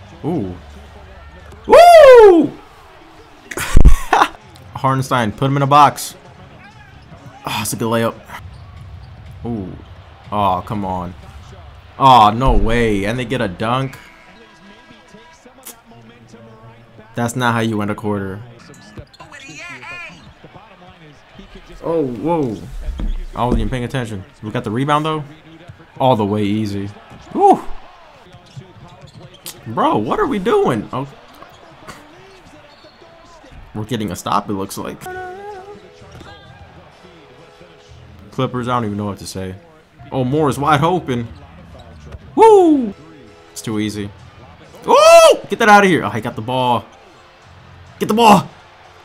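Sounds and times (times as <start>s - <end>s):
arena sound: 1.6s - 4.3s, 11.8s - 14.6s, 21.3s - 25.4s, 26.0s - 28.2s, 42.2s - 49.0s
commentator's voice: 9.4s - 27.8s, 28.4s - 32.9s, 33.7s - 46.9s, 48.0s - 48.6s.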